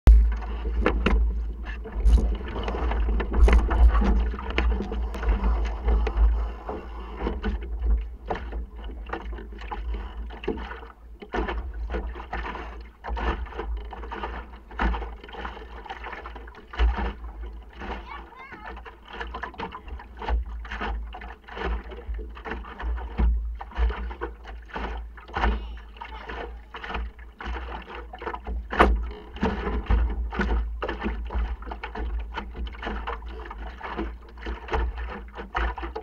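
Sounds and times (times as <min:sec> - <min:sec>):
wind rumble on microphone: 0:00.1 - 0:08.3
boat knocks: 0:00.1 - 0:36.0
water slapping against hull: 0:00.1 - 0:36.0.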